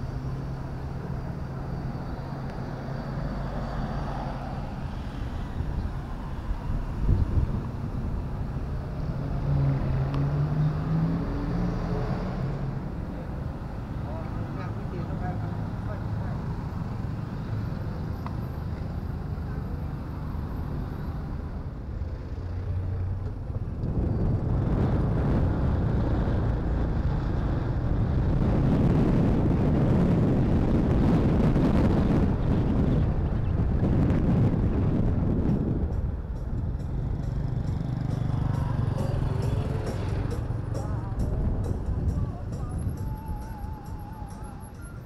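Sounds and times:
wind noise on microphone: 0:00.0 - 0:13.0, 0:23.0 - 0:45.0
motorcycle engine: 0:36.8 - 0:41.3.

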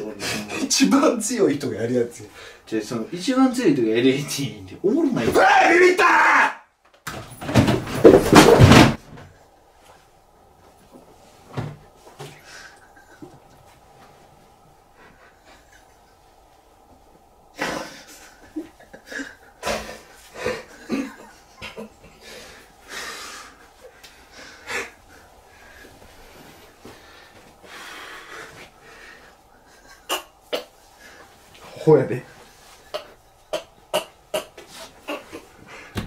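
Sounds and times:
man shouting: 0:05.0 - 0:06.7
stifled breathless laughter: 0:12.4 - 0:13.8, 0:17.6 - 0:23.2, 0:29.4 - 0:31.2, 0:32.8 - 0:36.0.

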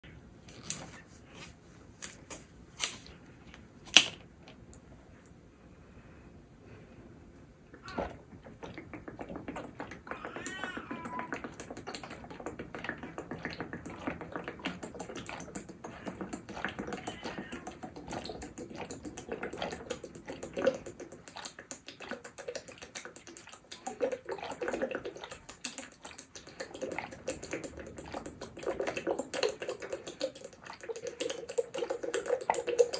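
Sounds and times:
person gulping and swallowing: 0:07.7 - 0:32.9.

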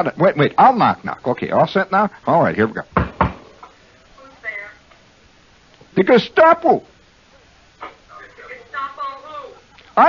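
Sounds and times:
knuckle knocks on hard surface: 0:03.0 - 0:03.4.

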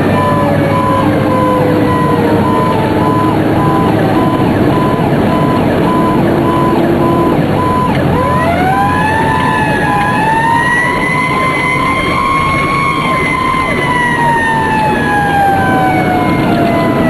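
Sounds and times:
engine and road noise: 0:00.0 - 0:17.0
fire siren wailing: 0:00.0 - 0:17.0
rapid steady beeping: 0:00.1 - 0:10.2.

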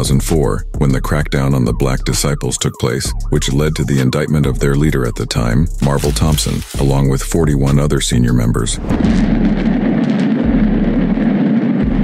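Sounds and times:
falling debris: 0:05.8 - 0:07.0
building collapsing rumble: 0:05.8 - 0:12.0.

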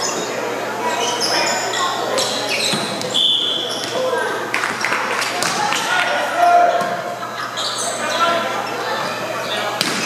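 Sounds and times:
sneaker squeaks: 0:00.0 - 0:04.2, 0:06.7 - 0:10.0
voices echoing in a hall: 0:00.0 - 0:10.0.

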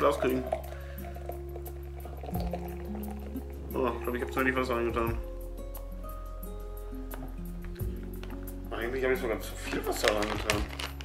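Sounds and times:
thick drink pouring into glass: 0:00.0 - 0:04.4
background music with held notes: 0:00.0 - 0:11.0.

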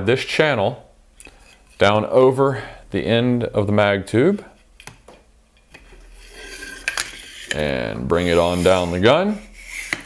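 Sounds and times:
wood scraping along metal: 0:05.8 - 0:10.0.

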